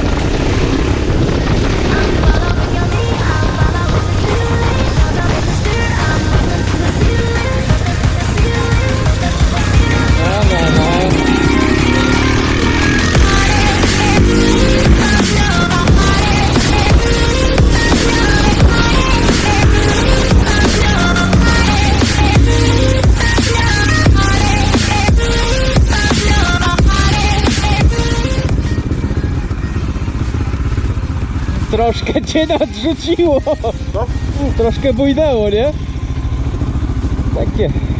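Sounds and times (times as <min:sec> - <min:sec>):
motorcycle engine running: 0:00.0 - 0:37.9
electronic music: 0:06.7 - 0:28.9.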